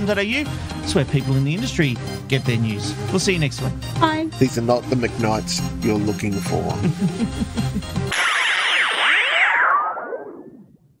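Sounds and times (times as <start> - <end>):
synthesized pitch sweeps with echo: 8.1 - 10.8.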